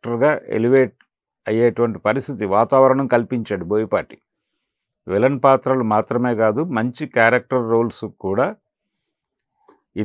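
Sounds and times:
man speaking: 0.0s - 0.9s, 1.5s - 4.2s, 5.1s - 8.6s.

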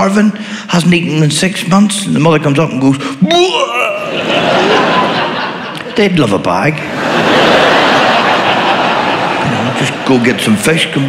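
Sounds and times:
audience laughing: 3.9s - 11.0s.

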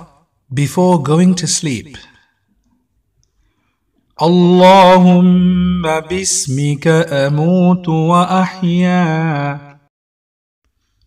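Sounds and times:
person speaking: 0.0s - 2.2s.

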